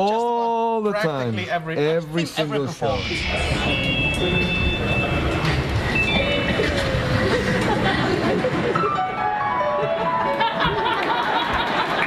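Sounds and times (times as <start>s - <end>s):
short high tone: 2.9s - 7.0s
audience laughter and crowd noise: 5.0s - 12.0s.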